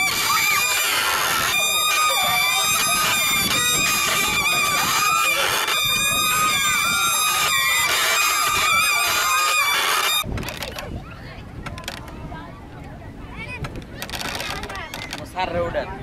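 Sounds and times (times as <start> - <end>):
ferris wheel squealing: 0.0 - 10.8.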